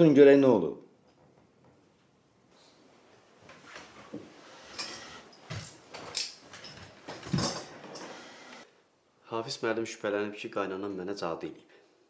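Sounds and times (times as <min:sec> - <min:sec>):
chair thumps: 0:05.5 - 0:08.0.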